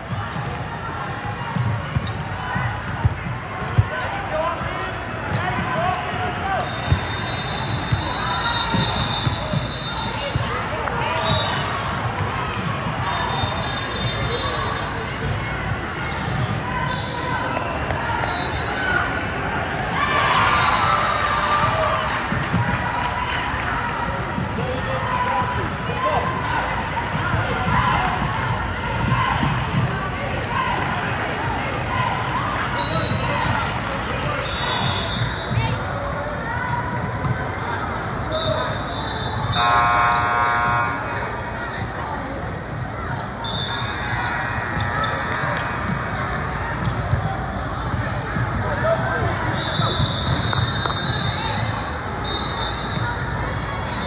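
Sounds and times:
sneakers squeaking on floor: 0:00.0 - 0:12.3, 0:12.9 - 0:19.1, 0:22.0 - 0:23.1, 0:24.0 - 0:32.0, 0:36.9 - 0:54.0
spectators chattering: 0:00.0 - 0:54.0.

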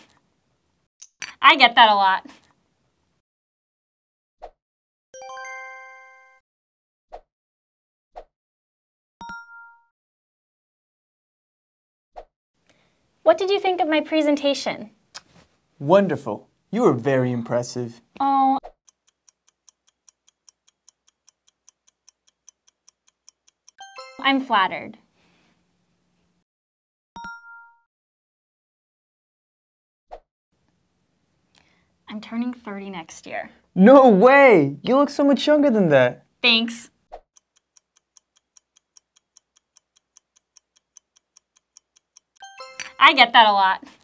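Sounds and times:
ticking clock: 0:18.8 - 0:24.4, 0:37.3 - 0:43.5.

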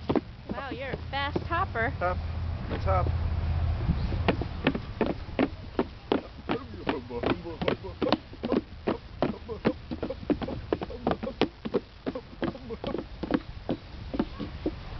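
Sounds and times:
footsteps on wooden planks: 0:00.0 - 0:01.6, 0:03.8 - 0:14.9.

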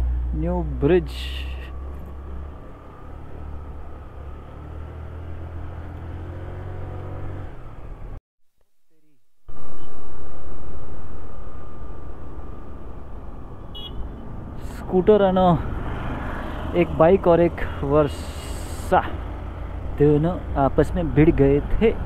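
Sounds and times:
wind and road noise: 0:00.0 - 0:08.2, 0:09.5 - 0:22.0.

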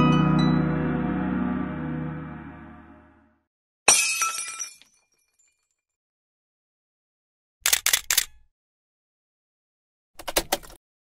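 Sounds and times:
glass shattering: 0:03.9 - 0:05.8.

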